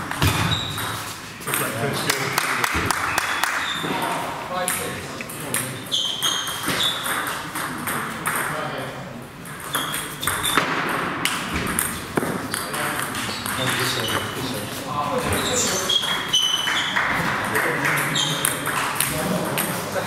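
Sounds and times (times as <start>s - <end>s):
voices chattering in a hall: 0.0s - 20.0s
table tennis balls clicking: 4.6s - 8.6s, 9.4s - 14.3s, 15.9s - 19.8s.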